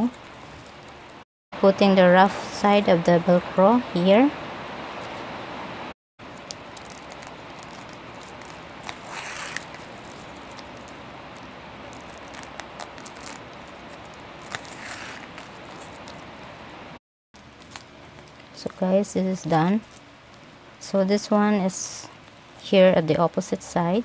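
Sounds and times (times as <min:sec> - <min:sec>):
fabric rustling: 0:06.7 - 0:16.5
fabric swishes: 0:08.9 - 0:10.1, 0:14.6 - 0:16.1.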